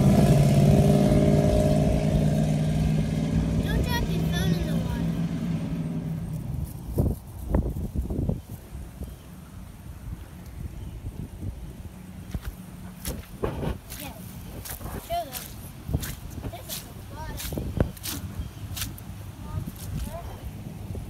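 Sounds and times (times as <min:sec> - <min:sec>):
footsteps on wet grass: 0:12.2 - 0:20.8.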